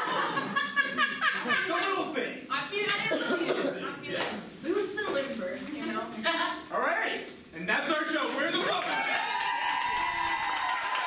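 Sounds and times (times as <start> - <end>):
audience clapping and cheering: 8.3 - 11.0.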